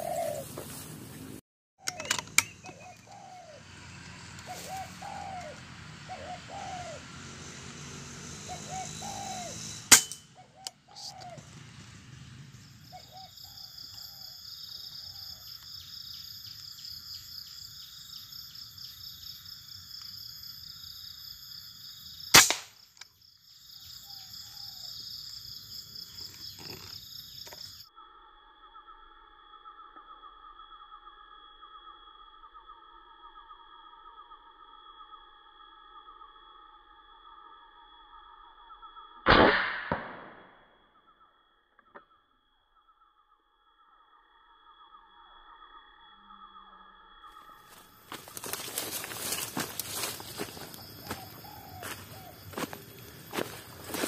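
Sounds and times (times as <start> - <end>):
doves cooing: 0.0 - 0.8, 1.8 - 15.5, 47.7 - 54.0
pulsing high-pitched buzz: 3.7 - 13.1
air rifle firing: 9.9 - 10.2, 22.4 - 22.8, 39.3 - 40.4.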